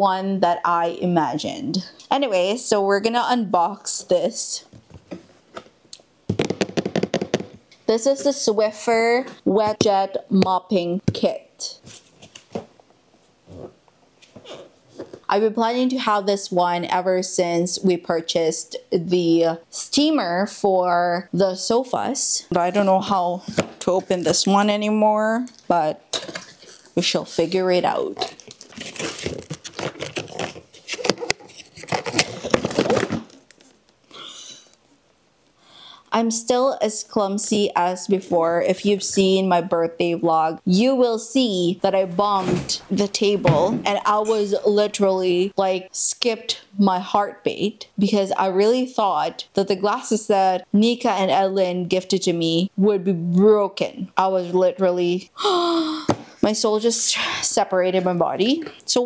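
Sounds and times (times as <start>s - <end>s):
cardboard box tearing: 28.6s - 33.3s.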